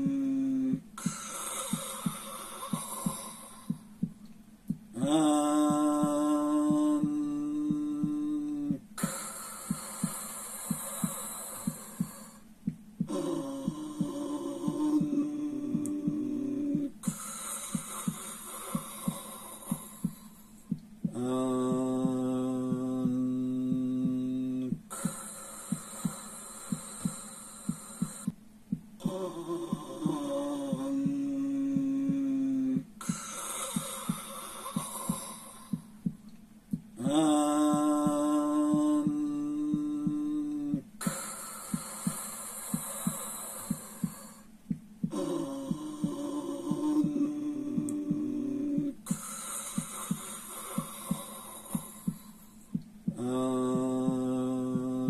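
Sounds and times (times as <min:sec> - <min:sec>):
man chanting a held tone: 0:00.0 - 0:01.2, 0:04.9 - 0:08.9, 0:13.1 - 0:17.1, 0:21.1 - 0:24.8, 0:29.0 - 0:33.2, 0:37.0 - 0:40.9, 0:45.1 - 0:49.2, 0:53.1 - 0:55.0
hissing breath: 0:00.0 - 0:03.9, 0:09.0 - 0:15.0, 0:16.9 - 0:20.7, 0:24.8 - 0:28.4, 0:33.0 - 0:36.1, 0:41.0 - 0:44.5, 0:49.0 - 0:52.8
soft heartbeat-like pulse: 0:00.0 - 0:55.0.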